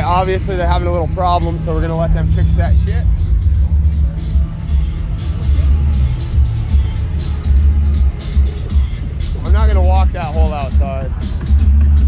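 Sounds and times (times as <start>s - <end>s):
deep bass music from subwoofers: 0.0s - 12.0s.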